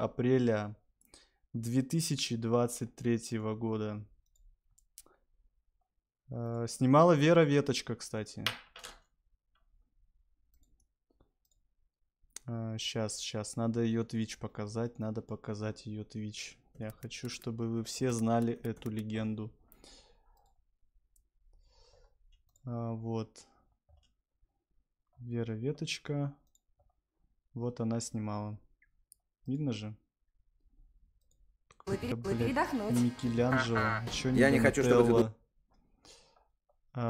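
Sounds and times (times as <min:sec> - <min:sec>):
computer mouse click: 0:16.8 - 0:19.1.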